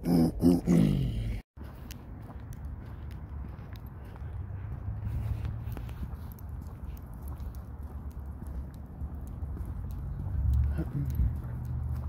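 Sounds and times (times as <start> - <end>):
running footsteps on asphalt: 1.6 - 12.0.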